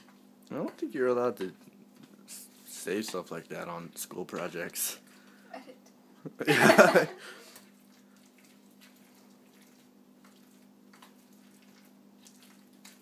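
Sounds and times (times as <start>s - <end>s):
wet squishes of mixing berries: 0.0s - 5.5s, 7.4s - 13.0s.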